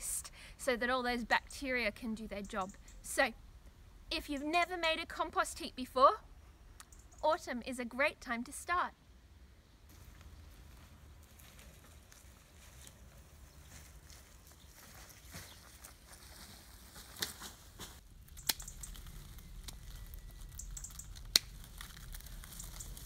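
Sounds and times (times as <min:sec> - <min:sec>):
rustling of dry brush and leaves: 0:09.9 - 0:23.0
pruning shears snipping stems: 0:18.3 - 0:18.9.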